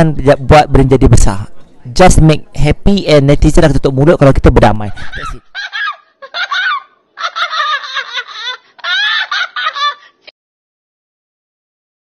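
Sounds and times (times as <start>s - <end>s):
woman laughing loudly: 5.0s - 10.3s.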